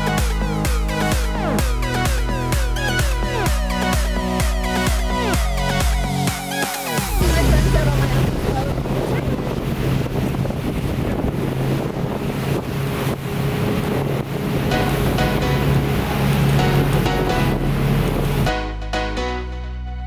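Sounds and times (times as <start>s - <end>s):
rushing water: 0.0s - 18.8s
motorboat engine drone: 0.0s - 20.0s
wind buffeting microphone: 7.2s - 18.5s.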